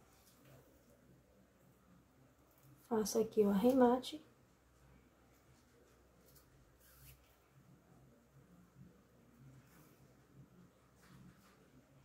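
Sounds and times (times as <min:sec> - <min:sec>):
thread drawn through ribbon: 0:06.2 - 0:07.4.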